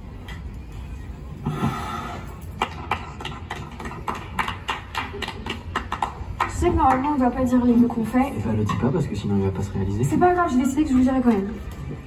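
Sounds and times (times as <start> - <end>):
people clapping: 2.4 - 7.2.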